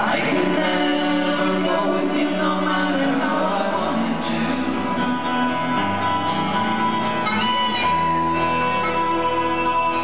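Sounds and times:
folk band playing: 0:00.0 - 0:10.0.

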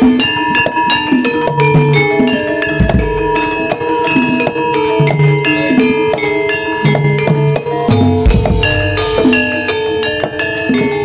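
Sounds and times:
drum strokes: 0:00.0 - 0:05.2, 0:07.9 - 0:11.0
metallophones and gongs ringing: 0:00.0 - 0:11.0
deep drum stroke: 0:02.8 - 0:03.7.

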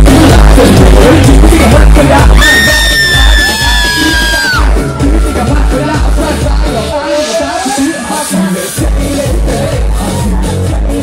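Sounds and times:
heavy bass beat: 0:00.0 - 0:11.0
live rap music over pa: 0:00.0 - 0:11.0
high-pitched scream: 0:02.3 - 0:06.4.

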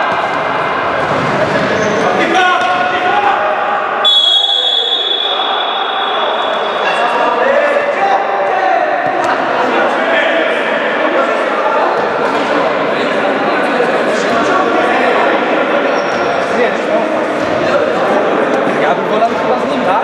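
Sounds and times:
players' voices: 0:00.0 - 0:20.0
referee's whistle blast: 0:04.0 - 0:06.8.

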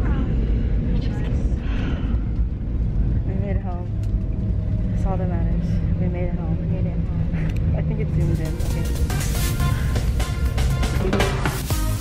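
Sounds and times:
airliner cabin drone: 0:00.0 - 0:11.6
voices: 0:05.0 - 0:09.2
music: 0:08.2 - 0:12.0.

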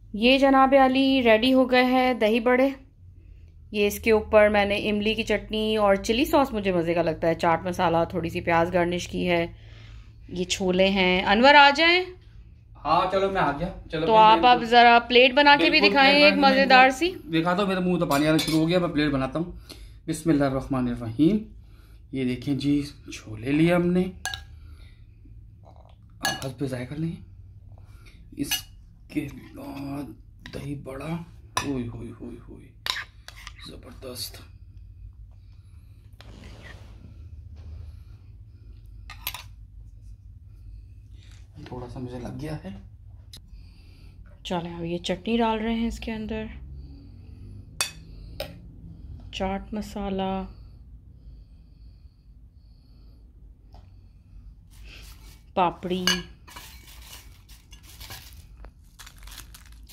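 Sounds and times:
metal spoon in ceramic dish: 0:18.1 - 0:18.8, 0:24.2 - 0:24.5, 0:26.2 - 0:26.6, 0:28.4 - 0:28.8, 0:32.8 - 0:33.7, 0:56.0 - 0:57.8
spoon clinking against dish: 0:24.2 - 0:24.5, 0:26.2 - 0:26.5
crackers crackling and rustling: 0:56.6 - 0:59.9.

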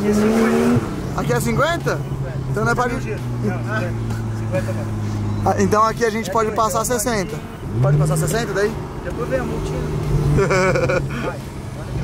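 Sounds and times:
car engine heard from cabin: 0:00.0 - 0:12.0.

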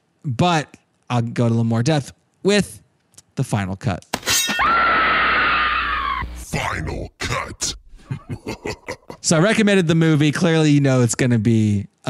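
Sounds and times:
high-pitched falling scream: 0:04.3 - 0:06.4.

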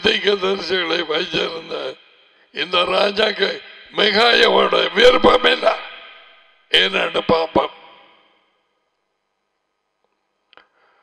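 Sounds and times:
man speaking into microphone: 0:00.0 - 0:02.0, 0:02.6 - 0:06.0, 0:06.7 - 0:08.0.

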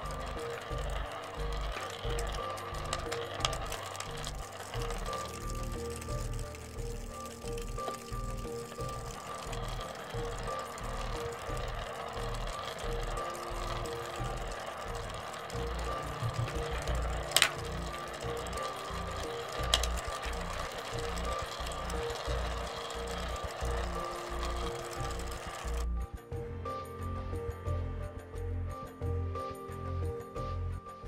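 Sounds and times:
small balls rolling on glass: 0:00.0 - 0:26.0
spinning top rattling: 0:00.0 - 0:26.0
background music: 0:00.0 - 0:31.0.

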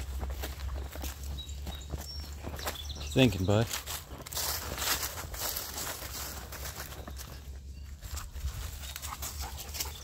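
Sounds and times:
dog panting: 0:09.0 - 0:10.0.

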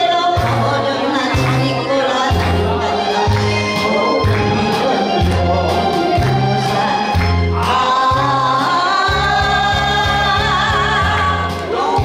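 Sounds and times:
electronic keyboard accompaniment: 0:00.0 - 0:12.0
woman singing into microphone: 0:00.0 - 0:12.0
pulsing bass line: 0:02.3 - 0:11.6.

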